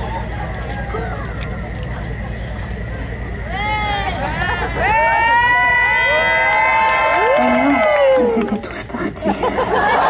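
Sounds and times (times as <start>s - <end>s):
concert audience cheering: 3.5s - 8.6s.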